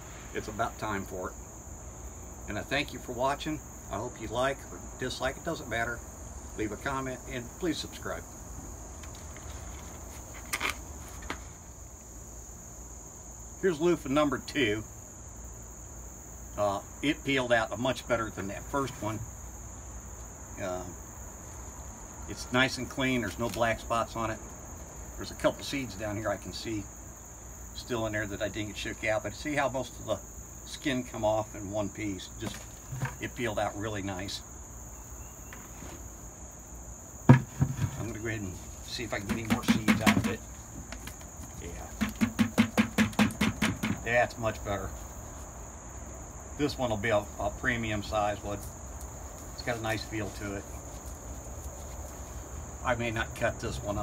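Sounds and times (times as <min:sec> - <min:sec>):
insect chorus drone: 0:00.0 - 0:54.0
gourd knocking in plastic bucket: 0:37.3 - 0:38.2, 0:39.1 - 0:41.2, 0:41.8 - 0:44.1.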